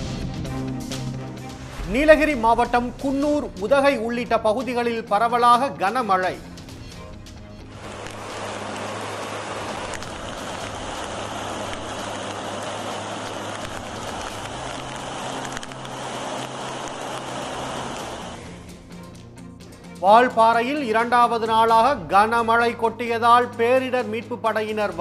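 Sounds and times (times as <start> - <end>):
music with low notes: 0.0 - 25.0
heavy rain and running water: 7.7 - 18.5.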